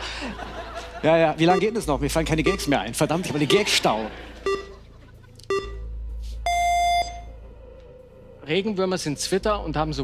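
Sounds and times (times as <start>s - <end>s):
countdown timer beeps: 1.4s - 3.8s, 4.4s - 7.4s.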